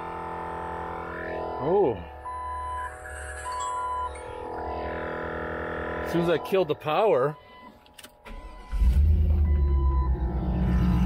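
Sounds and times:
electronic beep: 2.3s - 4.8s, 8.5s - 11.0s.

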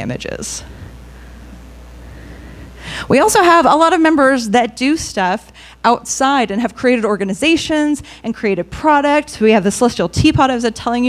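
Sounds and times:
low hum through speakers: 0.0s - 11.0s
breath into microphone: 0.7s - 3.1s.

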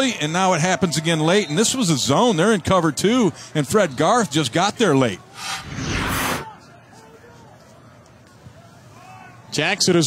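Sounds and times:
stadium crowd noise: 0.0s - 10.0s
transition whoosh: 5.3s - 6.5s.

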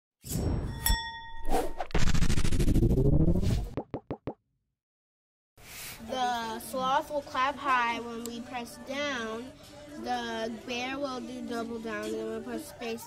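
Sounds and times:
bright ding: 0.6s - 1.5s
long rising whoosh: 1.5s - 3.8s.

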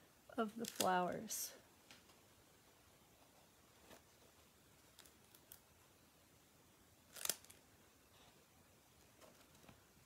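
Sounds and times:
brief crackle: 4.8s - 5.7s, 7.1s - 7.6s.

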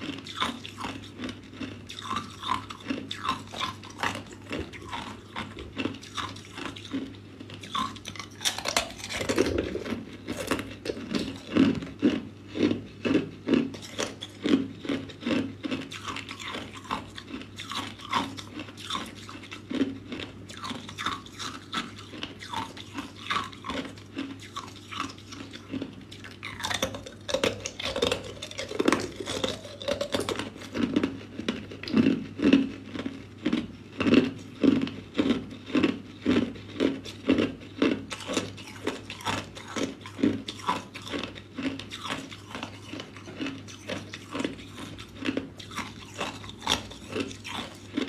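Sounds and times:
ice crunching between teeth: 0.0s - 48.0s.

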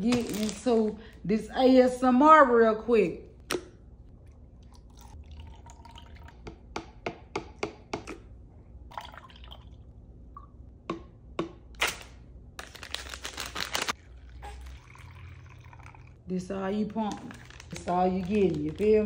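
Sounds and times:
plastic bag rustling: 0.0s - 1.0s, 12.6s - 14.0s, 16.8s - 19.0s.

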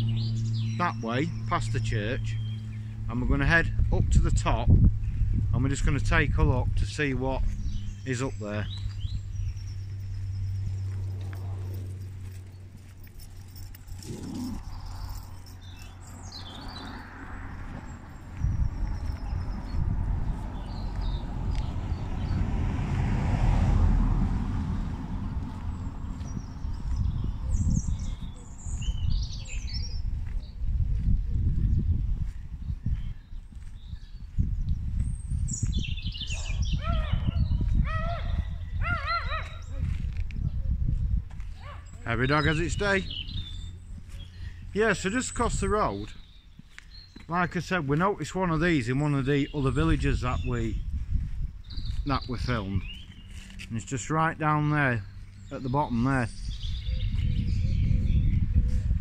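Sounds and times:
small birds chirping: 0.0s - 3.2s, 3.8s - 22.5s, 25.3s - 59.0s
vehicle passing: 0.0s - 30.8s, 47.3s - 57.2s
wind gusting on microphone: 0.0s - 47.2s, 48.3s - 53.9s, 55.0s - 59.0s.

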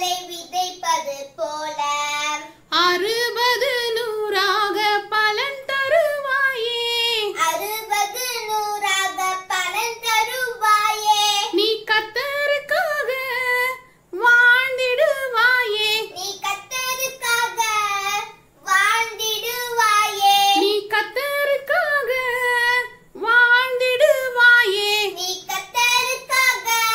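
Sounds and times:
girl singing: 0.0s - 26.9s.

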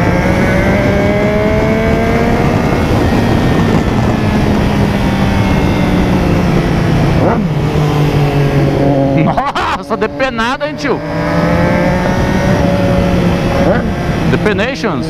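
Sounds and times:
motorcycle engine at highway speed: 0.0s - 15.0s
sport bike passing: 0.0s - 15.0s
wind noise: 0.0s - 15.0s.

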